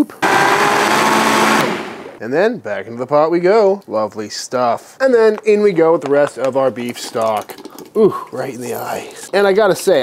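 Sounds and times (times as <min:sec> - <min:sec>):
blender motor whine: 0:00.0 - 0:02.2.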